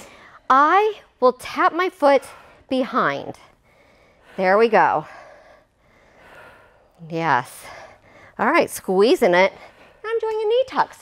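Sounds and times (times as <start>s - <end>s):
woman breathing heavily: 0.0s - 1.2s, 1.8s - 11.0s.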